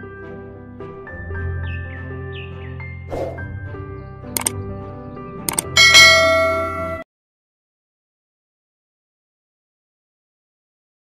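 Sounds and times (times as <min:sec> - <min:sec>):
background music: 0:00.0 - 0:07.0
quick double click: 0:04.4 - 0:04.6, 0:05.5 - 0:05.8
bright bell chime: 0:05.8 - 0:07.0.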